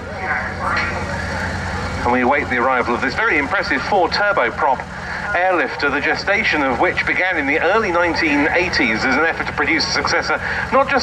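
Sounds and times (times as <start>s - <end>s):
faint voices: 0.0s - 11.0s
turboprop aircraft drone: 0.0s - 11.0s.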